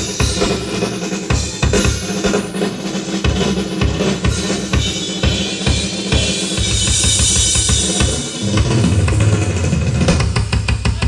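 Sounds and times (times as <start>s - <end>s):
drum kit solo: 0.0s - 11.0s.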